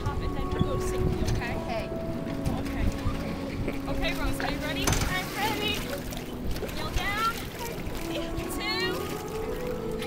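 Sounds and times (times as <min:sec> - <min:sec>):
choppy lake water: 0:00.0 - 0:10.0
wind buffeting microphone: 0:00.0 - 0:10.0.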